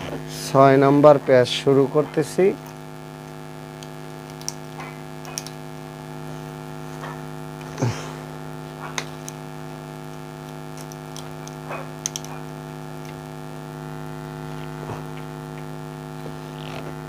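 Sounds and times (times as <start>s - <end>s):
electrical mains hum: 0.0s - 17.0s.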